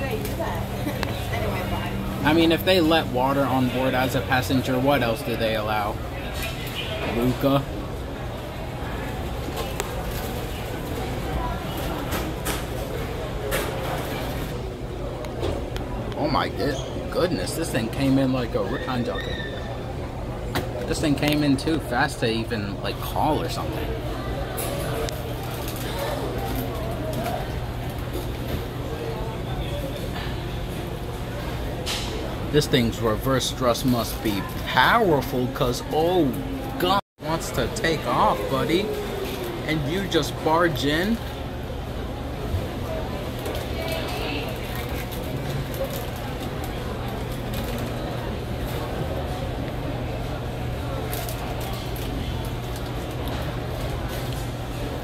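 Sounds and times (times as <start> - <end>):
constant low hum: 0.0 - 16.6
low hum of terminal interior: 0.0 - 55.0.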